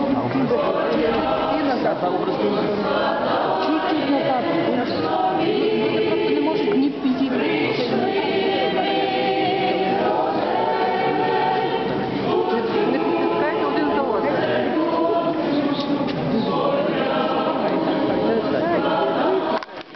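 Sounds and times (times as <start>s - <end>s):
people talking: 0.0s - 19.8s
group singing a hymn unaccompanied: 0.1s - 19.9s.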